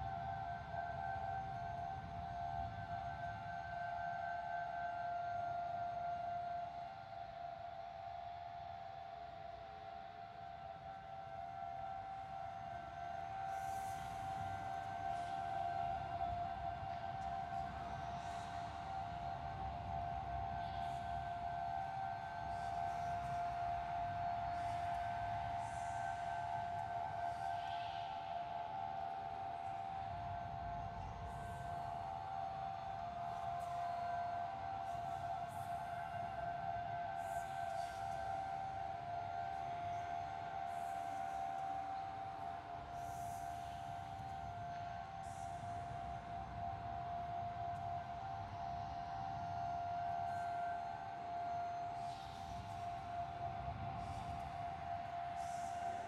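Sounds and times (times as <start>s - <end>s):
spooky ambient drone: 11.4s - 56.0s.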